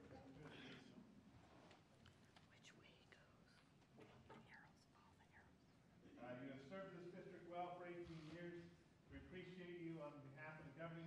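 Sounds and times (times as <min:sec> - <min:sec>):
small ticks and rustles: 0:01.4 - 0:05.7.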